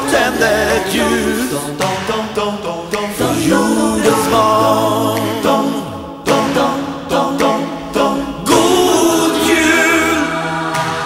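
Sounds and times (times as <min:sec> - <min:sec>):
group of voices singing: 0:00.0 - 0:11.0.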